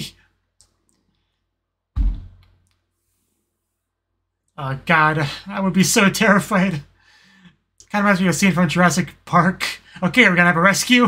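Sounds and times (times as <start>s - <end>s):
heavy thump: 2.0s - 2.5s.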